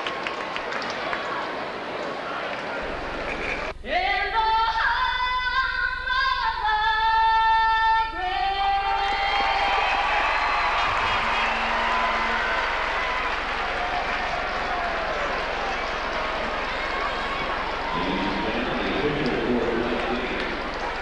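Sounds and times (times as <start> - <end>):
crowd cheering: 0.0 - 3.7, 8.8 - 21.0
woman singing long notes: 3.8 - 9.6.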